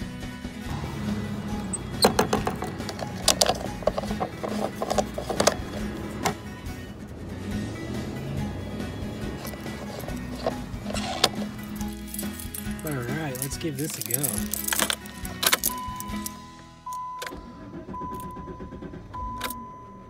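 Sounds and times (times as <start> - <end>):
background music: 0.0 - 20.0
sharp clicks and knocks: 1.6 - 6.4.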